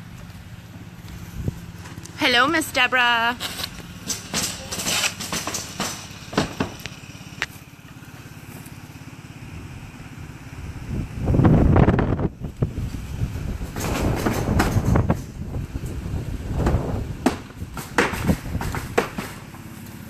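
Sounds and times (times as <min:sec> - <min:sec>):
truck engine rumbling: 0:00.0 - 0:20.0
sharp knocks and clicks: 0:04.0 - 0:07.5, 0:13.7 - 0:15.4.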